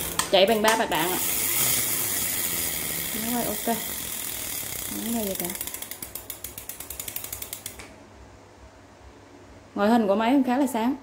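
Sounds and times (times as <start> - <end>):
fishing reel ratchet clicks: 0.0 - 7.8.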